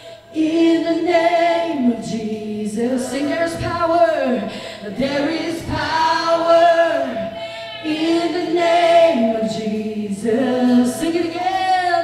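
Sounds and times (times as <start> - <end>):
voices singing along: 0.0 - 12.0
woman singing worship: 0.0 - 12.0.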